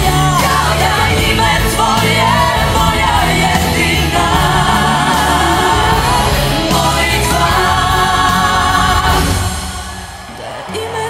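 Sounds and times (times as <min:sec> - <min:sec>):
instrumental backing: 0:00.0 - 0:09.8
woman singing: 0:00.0 - 0:11.0
women backing singers: 0:00.0 - 0:11.0.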